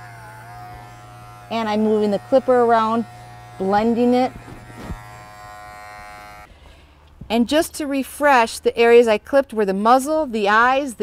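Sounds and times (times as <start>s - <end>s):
hair clipper humming: 0.0s - 6.5s.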